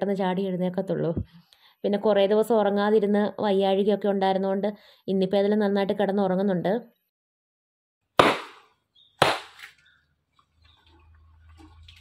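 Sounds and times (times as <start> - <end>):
wet cloth slapped on stone: 8.2 - 9.7.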